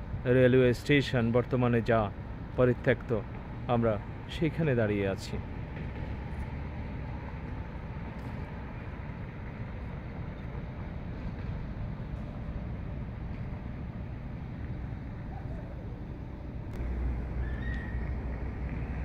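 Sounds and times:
distant traffic rumble: 0.0s - 19.0s.

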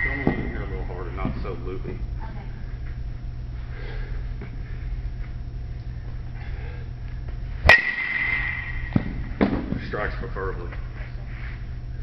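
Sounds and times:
metal bat pinging ball: 7.6s - 9.6s.

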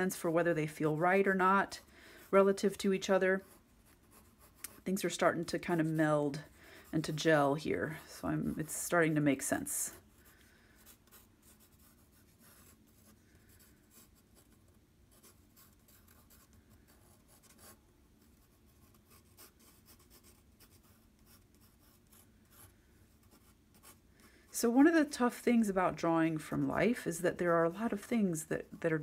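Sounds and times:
pencil scratching on paper: 0.2s - 24.0s.

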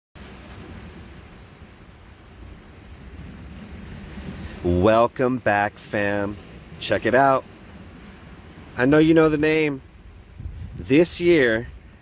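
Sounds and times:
wind noise on microphone: 0.2s - 4.9s, 6.2s - 12.0s
ocean surf: 0.2s - 12.0s.

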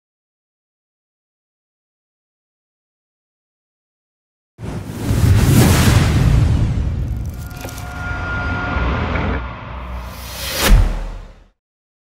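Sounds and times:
whoosh: 4.6s - 11.5s.

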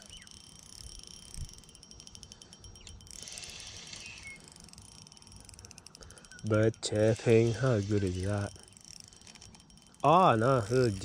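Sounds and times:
fishing reel whirring: 0.0s - 11.0s.

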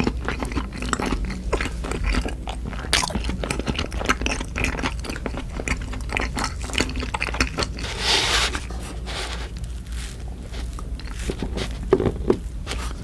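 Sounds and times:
close chewing with wet mouth clicks: 0.0s - 7.9s.

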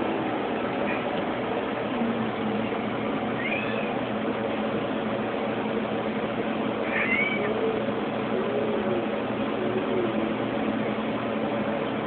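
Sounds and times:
steady background hiss: 0.0s - 12.0s
cat meowing: 3.4s - 4.0s, 6.8s - 7.6s.

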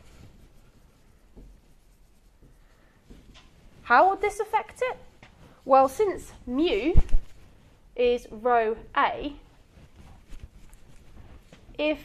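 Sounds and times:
woman's voice: 3.8s - 7.1s, 8.0s - 9.4s, 11.8s - 12.0s.

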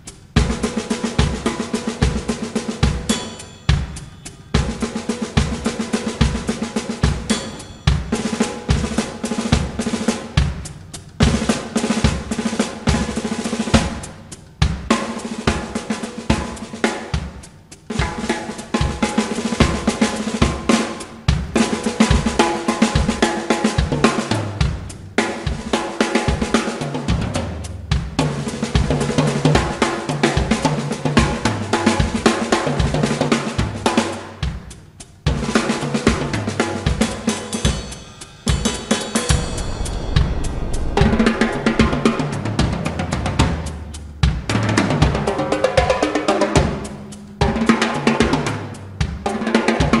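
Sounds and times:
cymbals: 0.0s - 50.0s
tom drums: 0.0s - 50.0s
bass drum: 39.3s - 45.4s.

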